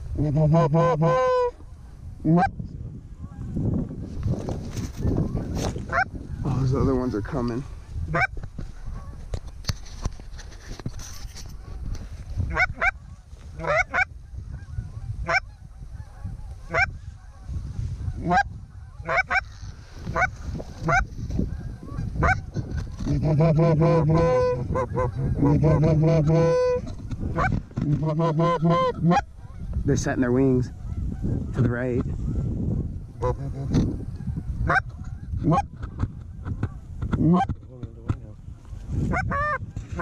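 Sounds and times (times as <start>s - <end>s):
geese honking and clucking: 0.0s - 2.6s, 3.2s - 4.0s, 4.9s - 10.0s, 10.6s - 37.7s, 38.4s - 40.0s.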